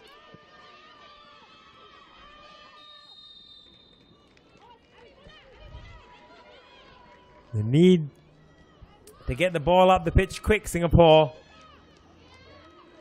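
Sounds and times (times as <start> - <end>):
footballers shouting: 7.6 - 8.6, 9.2 - 13.0.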